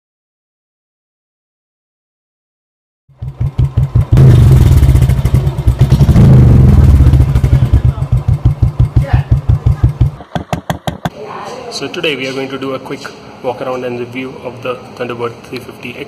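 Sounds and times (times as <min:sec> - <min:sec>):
single-cylinder motorcycle engine revving: 0:03.1 - 0:11.1.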